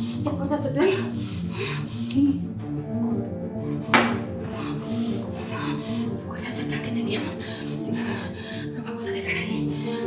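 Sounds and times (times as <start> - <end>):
background music: 0.0 - 10.0
sharp knock: 3.9 - 4.3.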